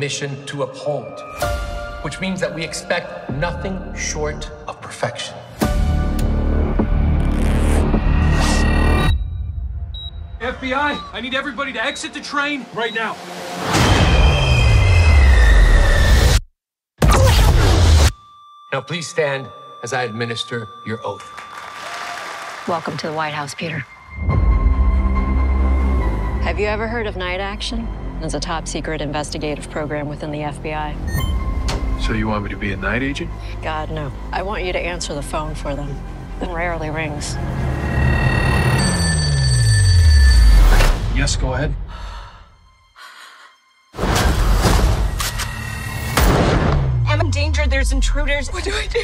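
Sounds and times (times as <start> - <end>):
desk telephone ringing: 18.2 - 23.0.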